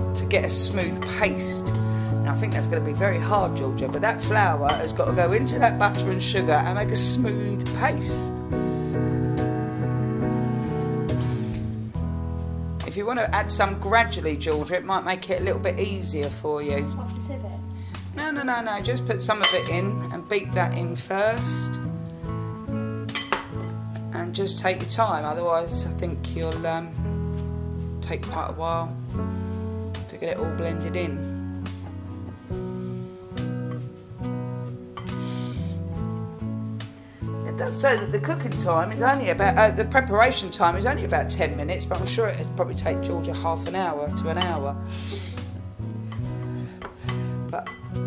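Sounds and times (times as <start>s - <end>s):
guitar music: 0.0s - 48.0s
spoon and bowl clinking on glass bowl: 19.4s - 19.8s, 23.1s - 23.7s.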